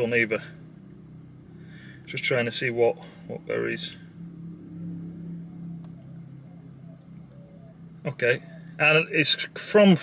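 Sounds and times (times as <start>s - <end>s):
car engine hum inside cabin: 0.0s - 10.0s.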